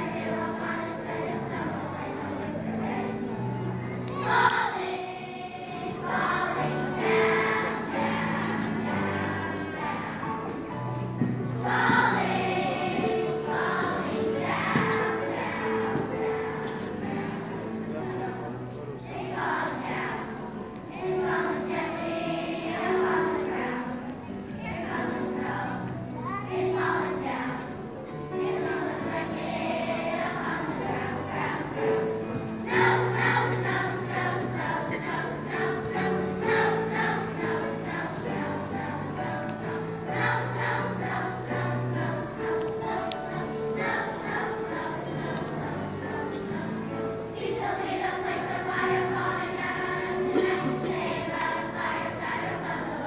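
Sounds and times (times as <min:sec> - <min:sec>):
children's choir singing: 0:00.0 - 0:53.0.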